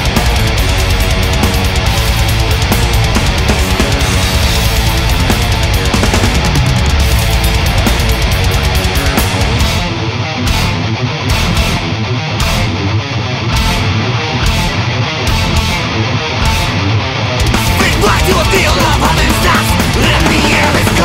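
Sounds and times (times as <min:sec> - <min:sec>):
bass: 0:00.0 - 0:21.0
distorted electric guitars: 0:00.0 - 0:21.0
fast drum hits: 0:00.1 - 0:09.9, 0:17.4 - 0:21.0.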